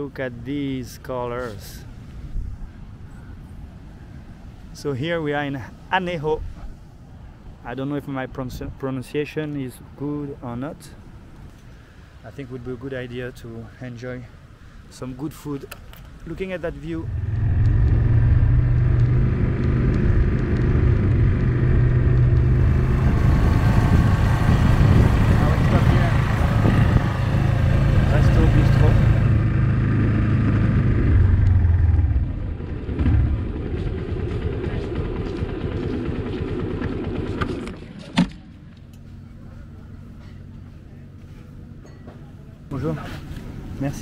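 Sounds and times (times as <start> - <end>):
street background noise: 0.0 - 44.0.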